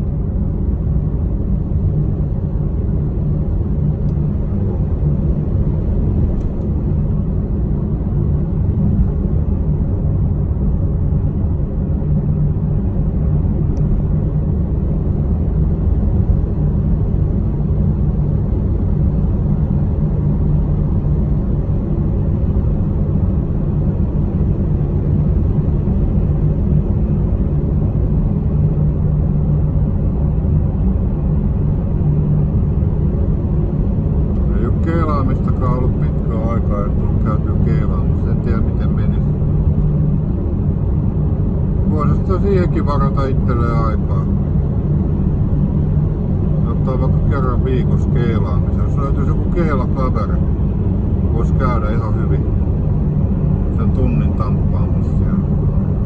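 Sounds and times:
car engine and road rumble: 0.0s - 56.0s
constant low hum: 0.0s - 56.0s.

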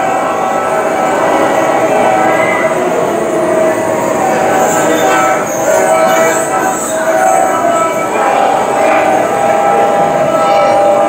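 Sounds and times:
mouth organs droning chords: 0.0s - 11.0s.

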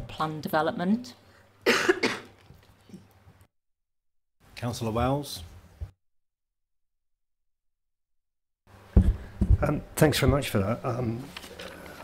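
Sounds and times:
person coughing: 1.6s - 2.4s.

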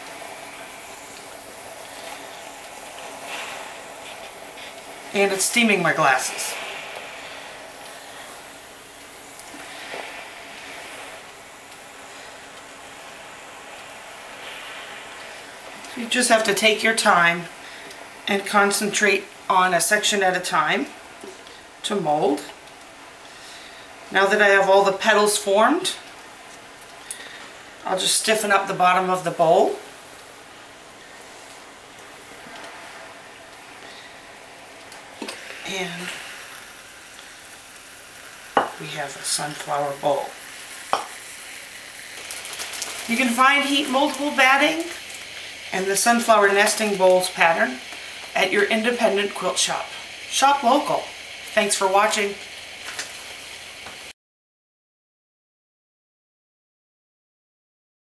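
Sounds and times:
steam iron hissing: 0.0s - 22.2s, 27.0s - 54.1s.

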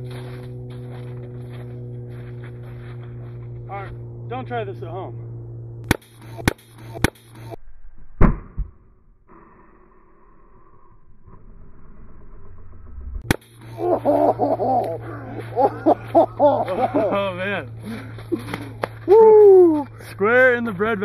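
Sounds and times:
sharp air launcher shot: 8.1s - 8.9s
voices: 13.7s - 21.0s.

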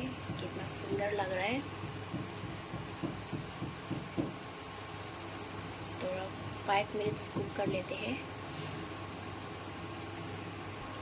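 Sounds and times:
faint steady hum: 0.0s - 11.0s
food sizzling in a frying pan: 0.0s - 11.0s.

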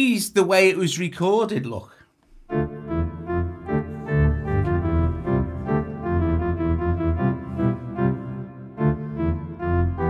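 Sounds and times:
organ chords over strong bass: 2.5s - 10.0s.

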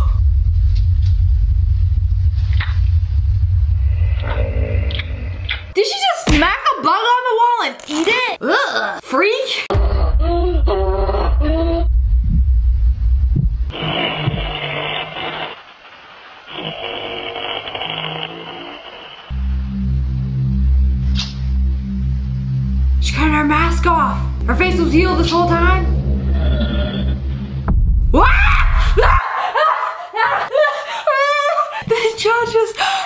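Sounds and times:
deep rumbling drone: 0.0s - 5.8s, 9.7s - 14.8s, 18.5s - 29.2s.

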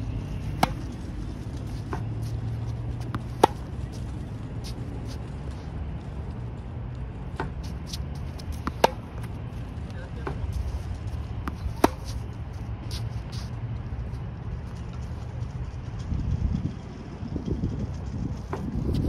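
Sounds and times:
steady low rumble: 0.0s - 19.0s
tennis racket hitting ball: 0.2s - 5.3s, 7.3s - 9.4s, 11.4s - 12.2s
ball bouncing on hard court: 0.4s - 1.0s, 3.0s - 3.8s, 7.4s - 9.4s, 11.4s - 12.2s.

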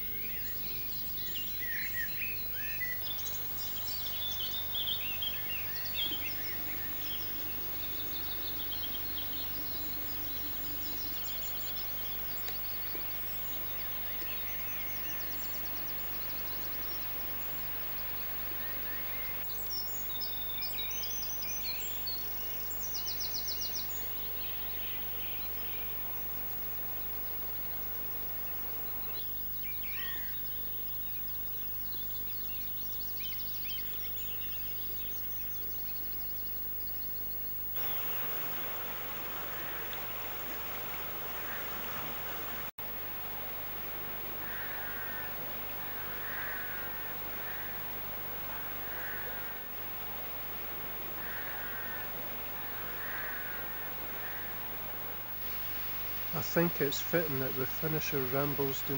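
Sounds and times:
low hum: 0.0s - 32.6s, 37.7s - 58.9s
birds chirping and singing: 0.0s - 42.6s, 55.7s - 58.9s.

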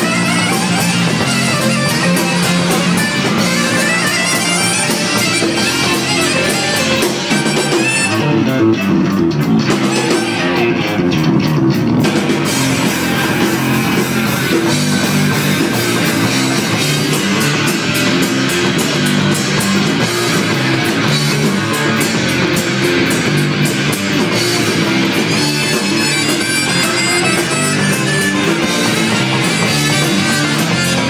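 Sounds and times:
live rock band playing: 0.0s - 31.0s.

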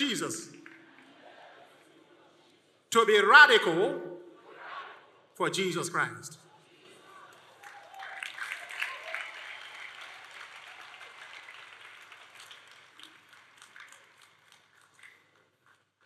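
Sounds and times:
congregation applauding: 0.0s - 1.8s, 7.3s - 15.9s.

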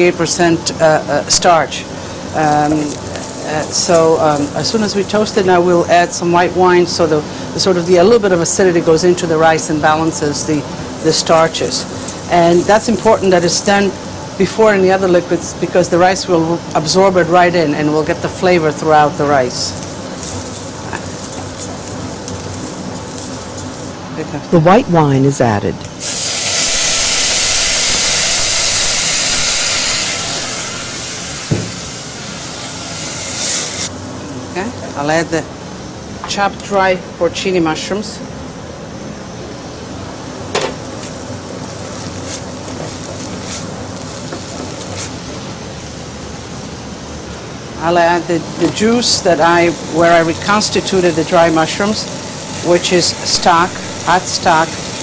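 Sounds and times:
steady hiss: 0.0s - 36.2s, 39.4s - 55.0s
rice sizzling in oil: 1.5s - 24.2s, 26.0s - 33.9s, 40.6s - 55.0s.

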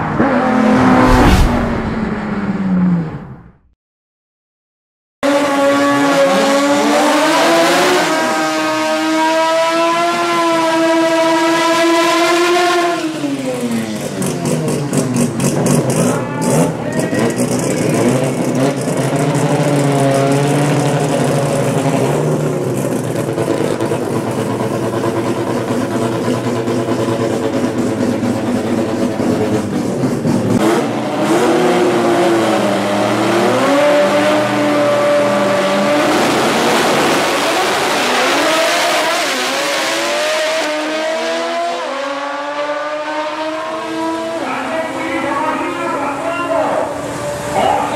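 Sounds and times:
engine revving high in burnout: 0.0s - 3.3s, 5.2s - 24.0s, 29.4s - 45.0s
engines idling and blipping: 13.2s - 32.8s, 44.0s - 47.9s.

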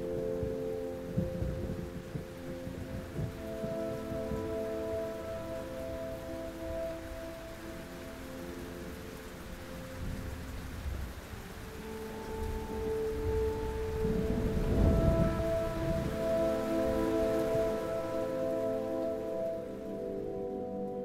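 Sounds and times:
low rumble of thunder: 0.0s - 19.5s
steady rain: 0.0s - 21.0s
sustained music notes: 0.0s - 21.0s.

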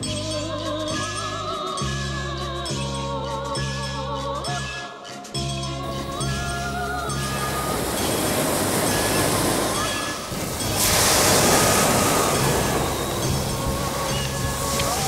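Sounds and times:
soft music with held notes: 0.0s - 15.0s
surf washing onto beach: 6.0s - 15.0s.

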